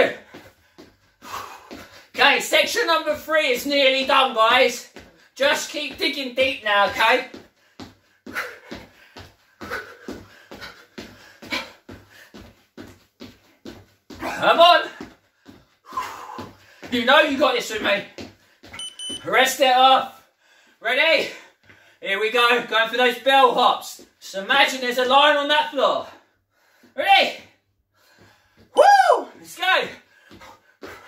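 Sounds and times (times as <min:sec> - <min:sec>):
man shouting: 0:02.2 - 0:07.3, 0:14.2 - 0:15.0, 0:27.0 - 0:27.5, 0:28.8 - 0:30.0
footfalls on wooden floor: 0:02.8 - 0:18.9
electronic beep: 0:18.8 - 0:19.2.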